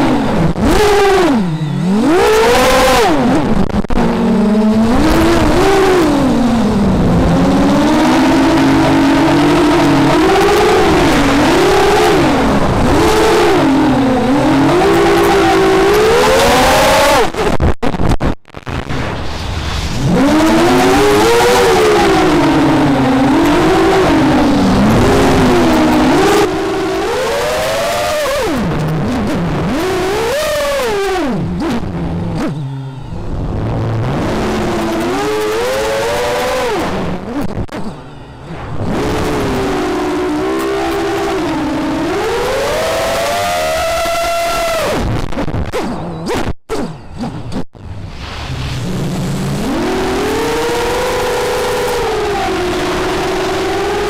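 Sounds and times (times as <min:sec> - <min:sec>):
drone propellers whining: 0:00.0 - 0:17.5, 0:18.7 - 0:54.0.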